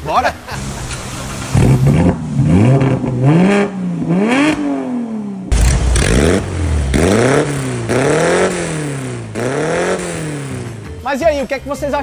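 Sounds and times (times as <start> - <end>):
deep exhaust rumble: 0.4 - 11.0
car engine revving: 0.5 - 10.9.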